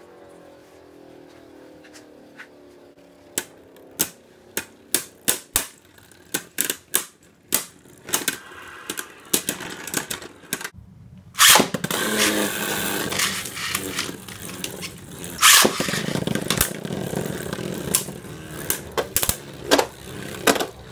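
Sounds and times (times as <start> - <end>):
spinning tops clacking on plastic: 11.4 - 20.9.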